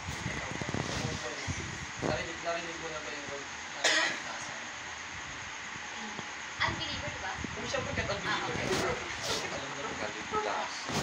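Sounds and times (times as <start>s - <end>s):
person coughing: 3.8s - 4.2s.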